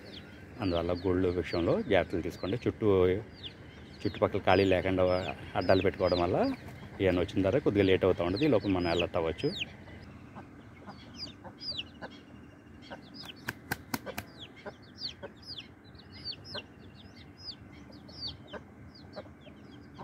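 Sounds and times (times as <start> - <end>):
chicks peeping: 0.0 - 20.0.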